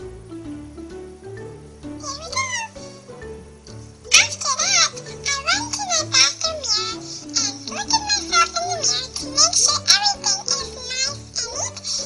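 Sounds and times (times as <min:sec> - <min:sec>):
background music with bass: 0:00.0 - 0:09.4.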